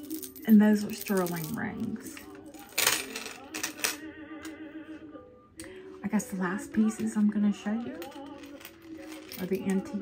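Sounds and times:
necklace clinking and rattling: 0.0s - 4.0s, 6.9s - 10.0s.

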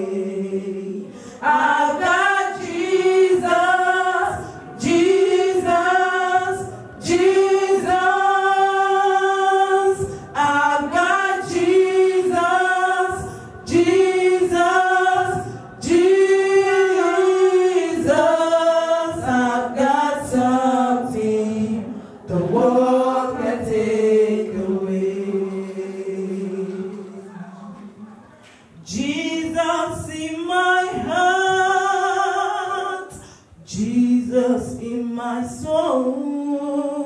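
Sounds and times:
women singing gospel a cappella: 0.0s - 37.0s.

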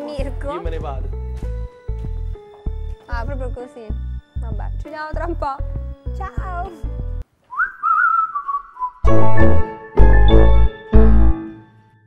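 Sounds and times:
background music: 0.0s - 7.2s, 9.0s - 12.0s
whistled tone gliding: 7.5s - 9.1s
loud theme music: 9.1s - 11.6s.

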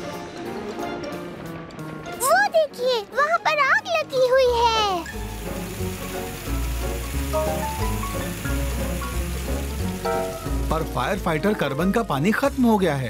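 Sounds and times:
cartoon background music: 0.0s - 13.0s
hose spraying water hiss: 4.8s - 13.0s.

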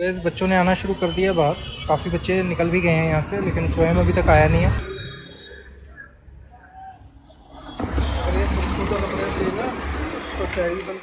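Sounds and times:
voices: 0.0s - 11.0s
vehicle passing on street: 1.9s - 5.0s, 7.6s - 11.0s.

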